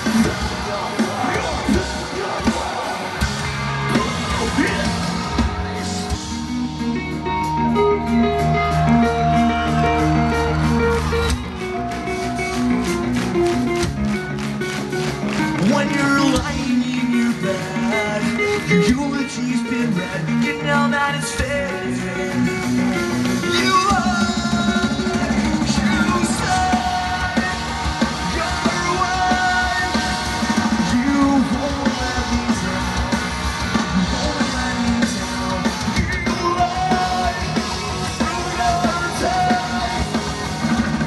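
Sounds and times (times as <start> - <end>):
bass line: 0.0 - 41.0
drums: 0.0 - 41.0
guitars: 0.0 - 41.0
rock band playing live: 0.0 - 41.0
person singing: 15.6 - 40.4.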